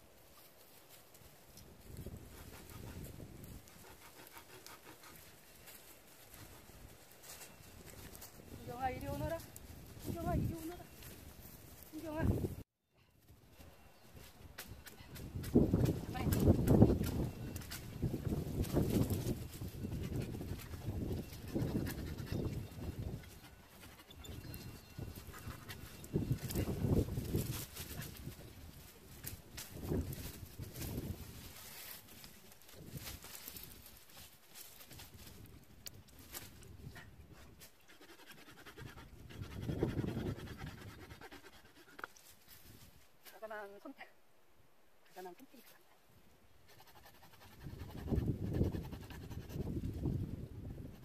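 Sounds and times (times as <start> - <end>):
wind buffeting microphone: 1.6 - 5.4, 6.3 - 12.6, 13.3 - 34.1, 38.4 - 41.8, 46.9 - 51.0.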